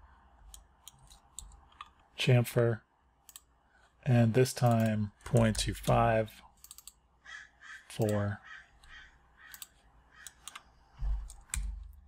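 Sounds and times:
computer mouse clicks: 0.4s - 2.1s, 3.2s - 3.5s, 4.6s - 6.0s, 6.6s - 7.0s, 8.0s - 12.0s.

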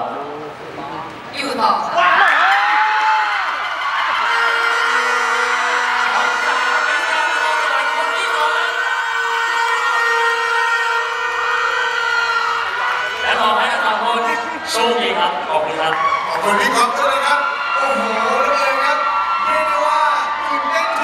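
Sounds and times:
audience cheering and screaming: 1.9s - 21.0s
whooping scream: 2.0s - 14.6s, 15.9s - 21.0s.

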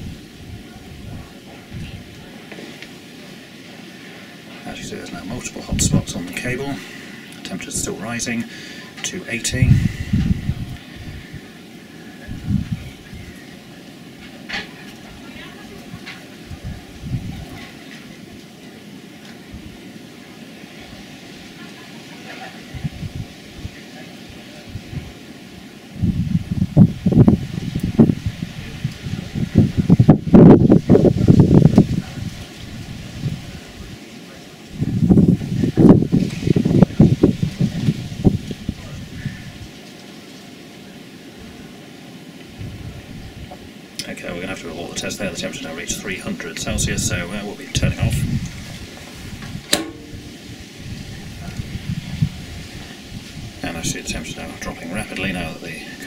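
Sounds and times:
wind buffeting microphone: 0.0s - 2.7s, 3.6s - 18.4s, 22.6s - 34.0s, 34.6s - 39.8s, 42.5s - 56.0s
low outdoor background: 0.0s - 56.0s.

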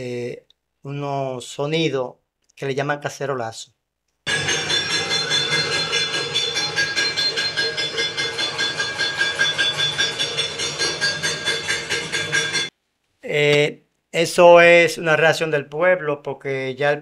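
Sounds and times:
metal pots banged rhythmically: 4.3s - 12.7s.

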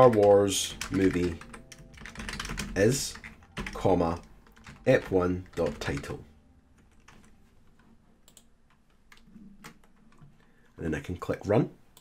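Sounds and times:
computer keyboard keystrokes: 0.0s - 6.1s.

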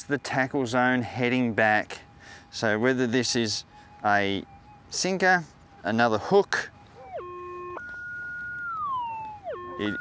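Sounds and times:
metal detector tone: 7.0s - 10.0s.

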